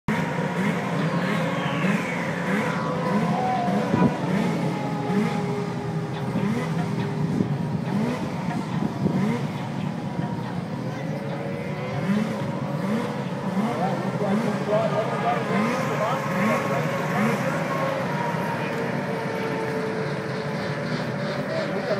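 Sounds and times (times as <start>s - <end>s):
falling whine: 0.1s - 9.0s, 14.0s - 21.9s
crowd chatter: 0.1s - 21.9s
snowmobile engines revving: 0.1s - 21.9s.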